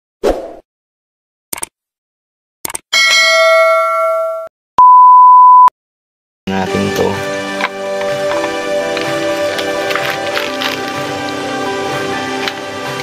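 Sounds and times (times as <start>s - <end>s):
quick clicks: 2.6s - 2.8s
bell-like ding: 3.0s - 4.5s
test-tone beep: 4.8s - 5.7s.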